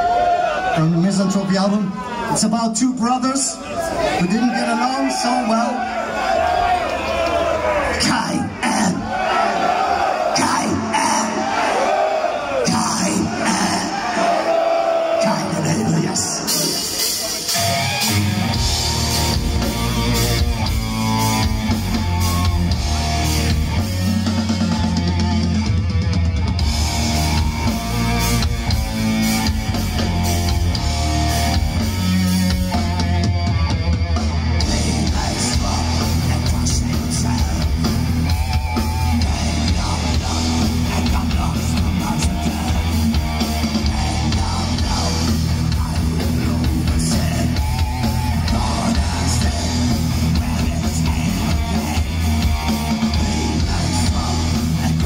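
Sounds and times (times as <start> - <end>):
thrash metal band playing live: 10.3 - 11.5, 12.6 - 14.5, 15.1 - 55.0.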